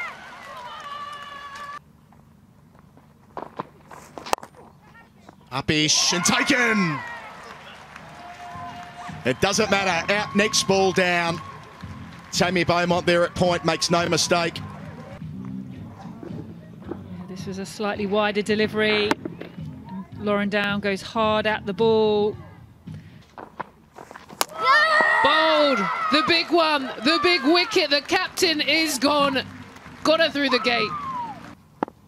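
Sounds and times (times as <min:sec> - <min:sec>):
quiet ground ambience: 0:01.2 - 0:32.0
soft footfalls: 0:02.6 - 0:05.4, 0:23.2 - 0:25.2
faint voices of players and crowd: 0:04.5 - 0:20.3, 0:25.2 - 0:31.6
quiet background music: 0:07.6 - 0:24.0, 0:26.2 - 0:31.7.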